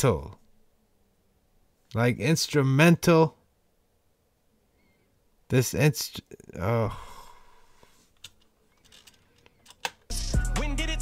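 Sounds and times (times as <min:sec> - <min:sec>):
song playing: 0:10.1 - 0:11.0.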